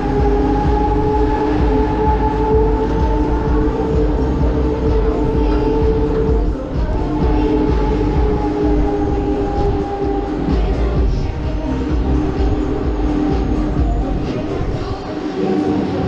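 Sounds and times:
fairground ride rumbling: 0.0s - 16.0s
ride music: 0.0s - 16.0s.

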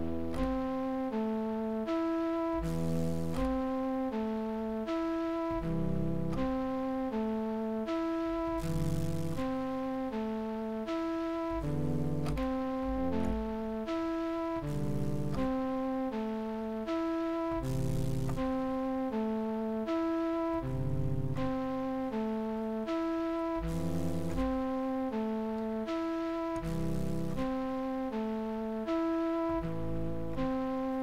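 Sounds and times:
hip-hop beat with bass and drums: 0.0s - 31.0s
synthesized flute melody: 0.0s - 31.0s.

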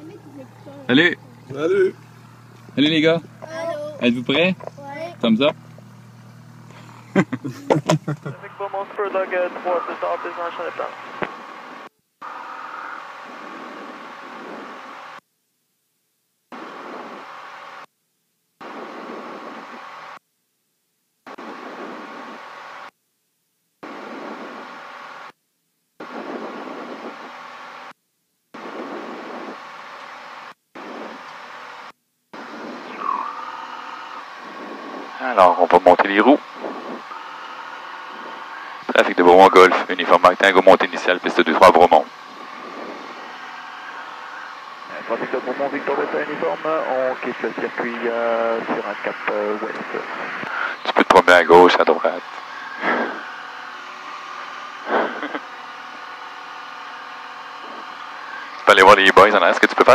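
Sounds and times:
aircraft engine drone over intercom: 0.0s - 15.2s, 30.8s - 31.3s, 32.4s - 59.9s
people laughing: 6.9s - 8.5s, 52.8s - 53.2s, 54.8s - 55.6s.

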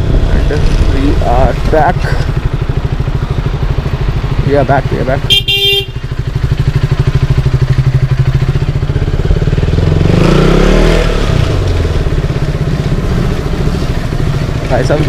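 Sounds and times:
motorcycle engine running: 0.0s - 15.0s
horn beep: 5.2s - 6.0s.

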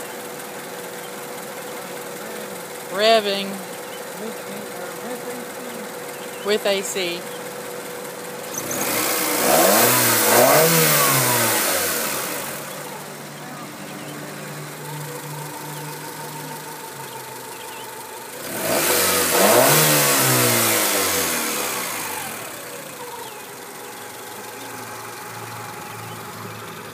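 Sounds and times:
car engine idling and revving: 0.0s - 26.9s.

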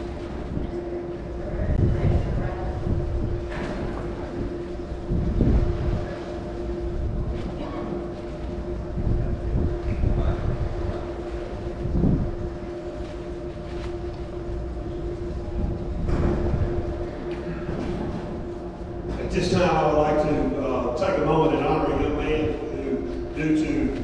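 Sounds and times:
constant hum: 0.0s - 24.0s
low rumble: 0.0s - 24.0s
faint voices: 0.5s - 24.0s.

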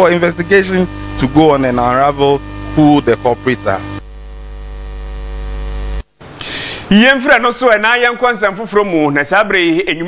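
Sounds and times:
electrical mains hum: 0.0s - 6.4s.

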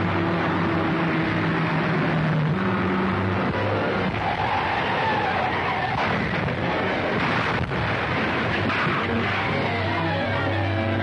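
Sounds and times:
car crashing down rocky hillside: 4.1s - 9.7s.

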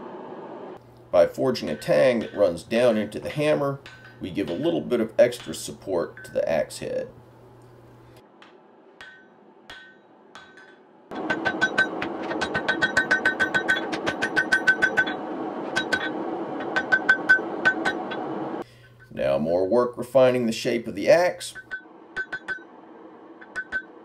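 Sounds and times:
hammer striking metal on anvil: 1.4s - 6.4s, 8.4s - 18.4s, 21.5s - 22.7s, 23.4s - 24.0s.

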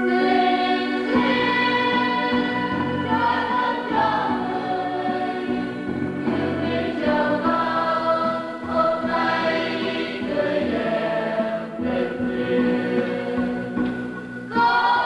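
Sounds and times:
church choir singing a hymn: 0.0s - 15.0s.

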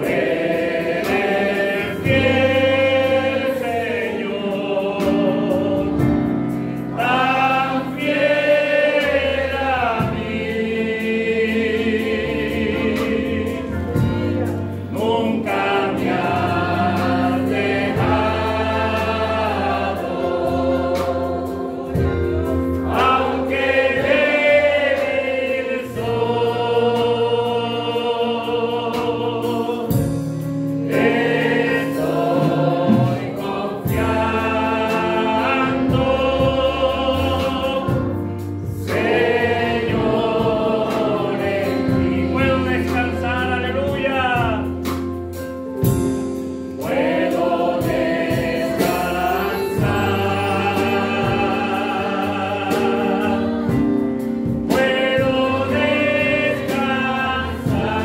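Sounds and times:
voices singing along: 0.0s - 30.1s, 30.8s - 44.7s, 46.8s - 58.0s
keyboard: 0.0s - 58.0s.

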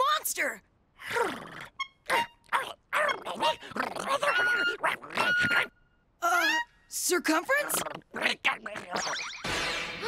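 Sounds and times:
cartoon monster jabbering: 2.1s - 5.7s, 7.3s - 9.2s.

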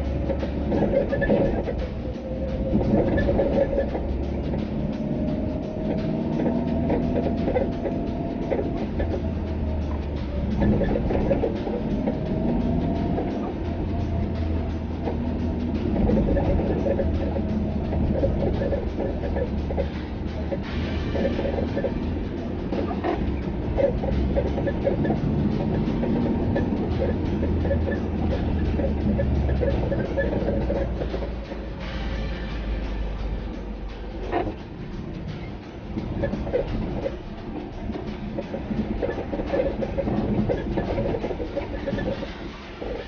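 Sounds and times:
car engine and tyres rumbling: 0.0s - 43.0s
music playing: 0.0s - 43.0s.

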